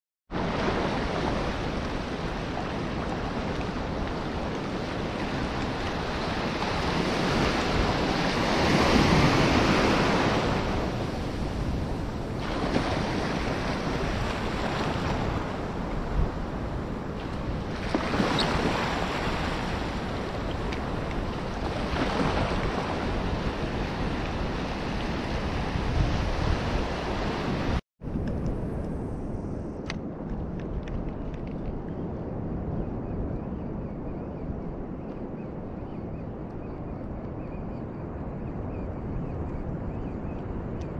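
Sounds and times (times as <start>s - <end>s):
calm water noise: 0.3s - 27.8s
wind buffeting microphone: 0.3s - 40.9s
surf washing over sandy beach: 0.4s - 27.8s.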